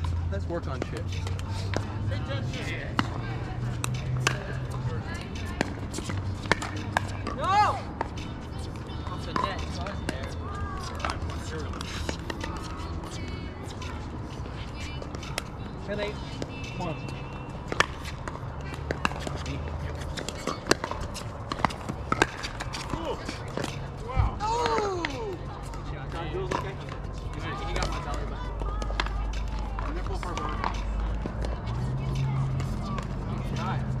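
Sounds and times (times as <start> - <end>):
indistinct voices: 1.0 - 34.0.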